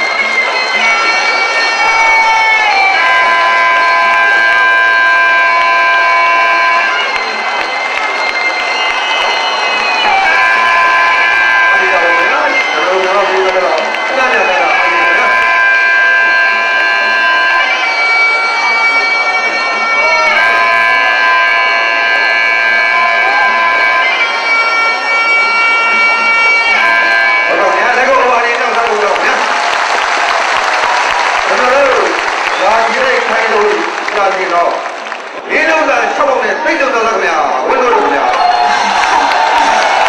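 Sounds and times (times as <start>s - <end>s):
crowd shouting and cheering: 0.0s - 40.0s
shawm playing long notes: 0.0s - 40.0s.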